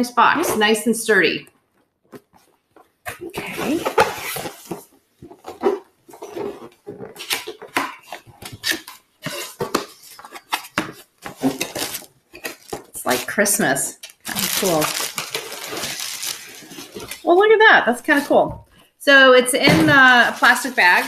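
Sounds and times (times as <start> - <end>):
cardboard box being opened: 3.2 - 17.3.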